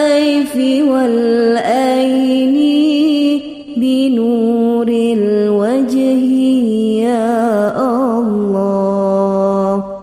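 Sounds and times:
person chanting devotional song: 0.0s - 10.0s.

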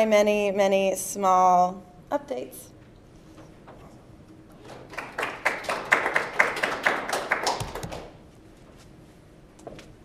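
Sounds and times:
group applauding: 4.6s - 8.2s.

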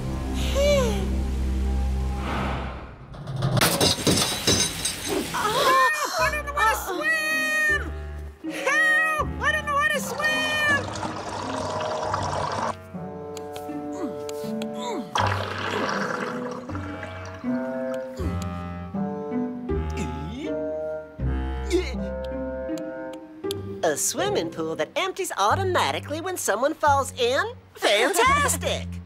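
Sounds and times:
cartoon music: 8.5s - 12.7s
rush of water: 10.3s - 12.8s.

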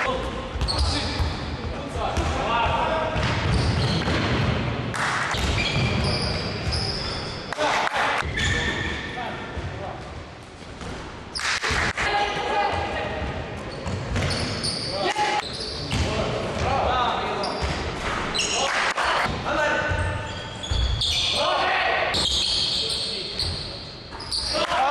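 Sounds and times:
sneakers squeaking on wooden floor: 0.6s - 1.6s, 3.1s - 4.2s, 5.3s - 7.5s, 8.2s - 9.8s, 12.6s - 18.7s, 19.8s - 21.4s, 22.1s - 24.7s.

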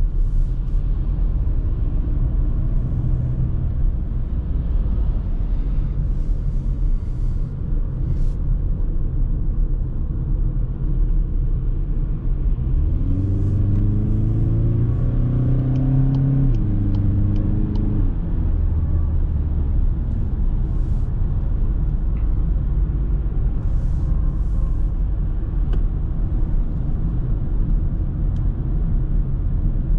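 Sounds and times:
diesel engine accelerating: 12.1s - 29.9s.

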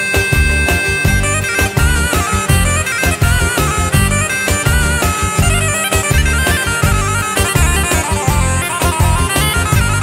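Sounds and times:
quick steady beat: 0.0s - 10.0s
reedy wind instrument melody: 0.0s - 10.0s.

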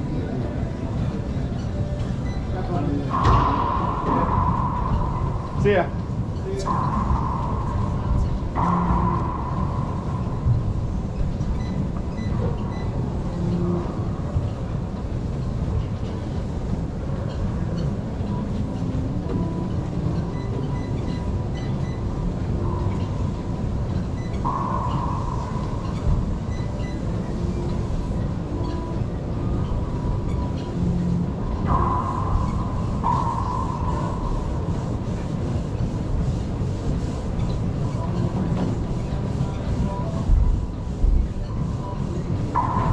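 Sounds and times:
low rumble: 3.0s - 36.2s.

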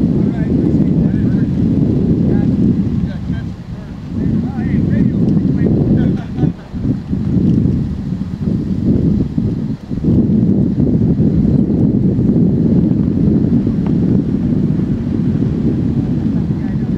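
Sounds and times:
wind buffeting microphone: 0.0s - 16.9s.

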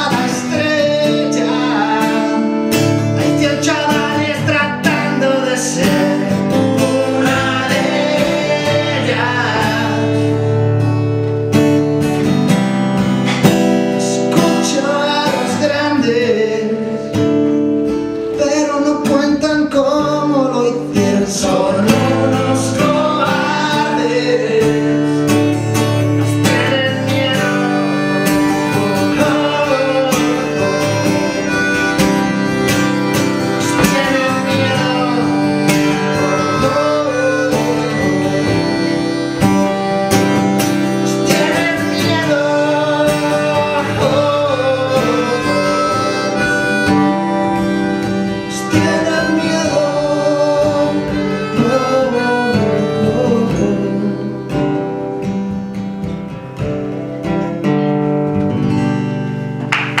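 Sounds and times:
acoustic guitar strumming: 0.0s - 60.0s
harmonica melody: 0.0s - 60.0s.

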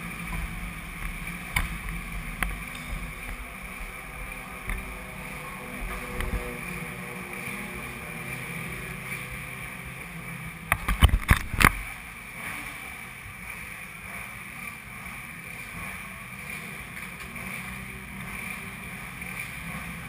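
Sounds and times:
motorcycle engine idling: 0.0s - 10.9s.

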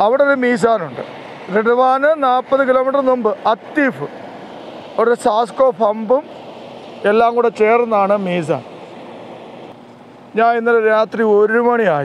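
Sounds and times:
heavy trucks passing: 0.0s - 11.3s
person speaking: 7.0s - 8.8s.

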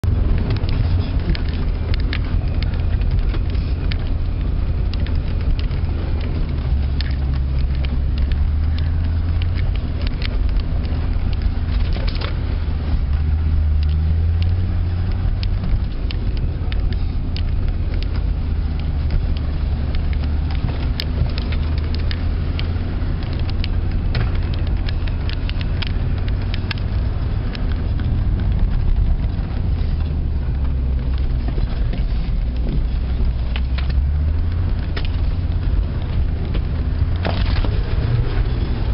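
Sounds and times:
engine drone inside vehicle: 0.0s - 38.9s
clicks and rattles: 0.2s - 38.9s.

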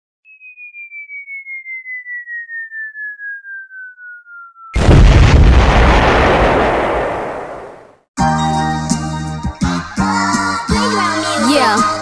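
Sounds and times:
falling bomb whistle: 0.3s - 5.5s.

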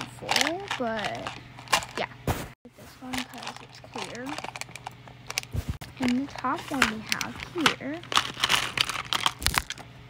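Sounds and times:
plastic beads clicking and rattling: 3.1s - 5.4s, 8.0s - 9.8s.

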